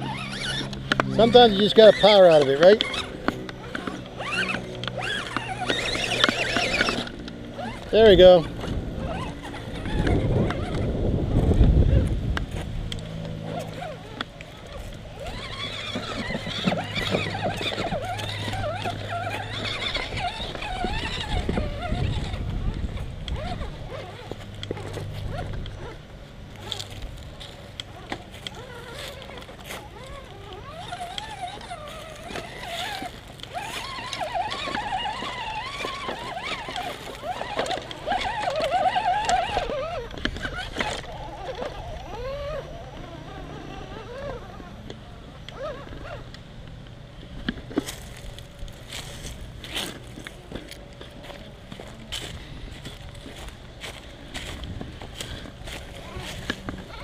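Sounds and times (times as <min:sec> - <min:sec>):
rc car motor whining: 0:00.0 - 0:57.0.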